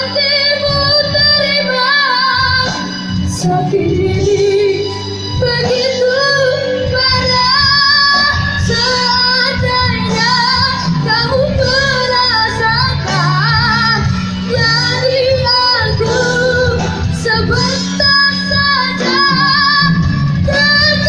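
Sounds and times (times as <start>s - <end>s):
child singing a ballad: 0.0s - 21.0s
instrumental accompaniment: 0.0s - 21.0s.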